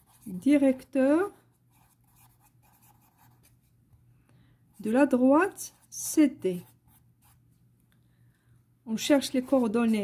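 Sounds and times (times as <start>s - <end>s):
pen scratching on paper: 0.0s - 0.9s, 1.7s - 3.6s, 4.8s - 7.4s, 9.2s - 10.0s.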